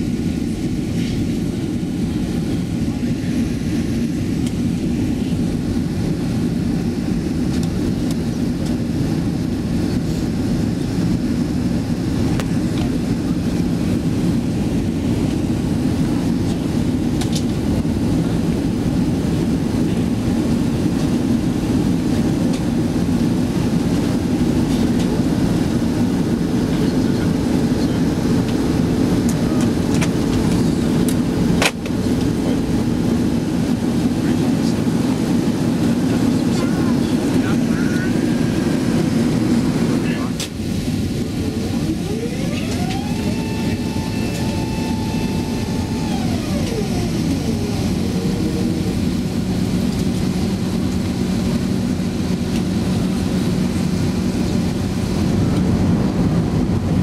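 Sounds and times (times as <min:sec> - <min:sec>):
airplane cabin engine rush: 0:00.0 - 0:57.0
rising whine: 0:25.0 - 0:57.0.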